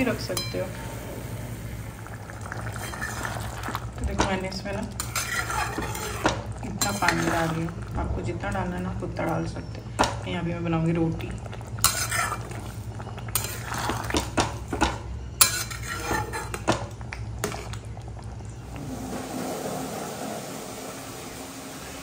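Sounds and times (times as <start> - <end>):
spatula scraping a metal pot: 2.7 - 3.3, 5.0 - 7.6, 11.8 - 12.7, 13.3 - 14.2, 15.4 - 16.6.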